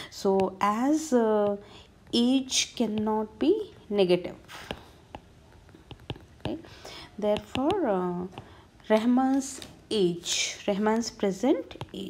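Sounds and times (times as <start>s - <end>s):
stylus tapping on tablet screen: 0.0s - 3.4s, 4.6s - 9.7s, 11.6s - 12.0s.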